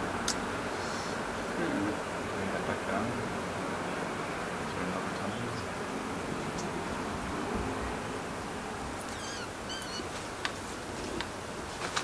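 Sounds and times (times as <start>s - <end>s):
outdoor hiss: 0.0s - 12.0s
bird chirping: 7.7s - 10.2s.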